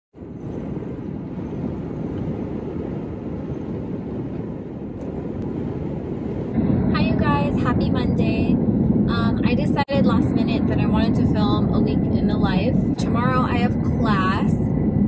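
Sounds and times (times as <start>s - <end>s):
car cabin road and engine rumble: 6.9s - 8.5s.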